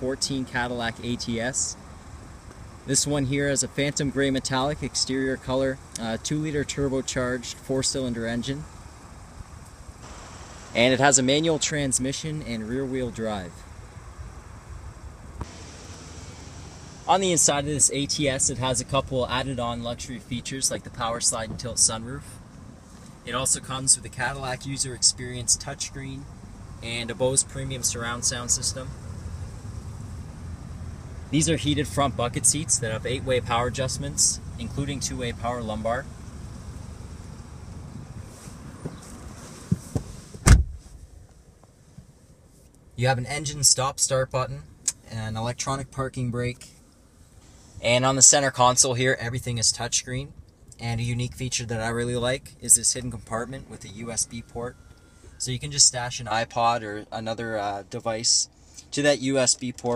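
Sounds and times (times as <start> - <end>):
wind rumble on microphone: 36.4 - 41.0
loud thump: 39.7 - 40.8.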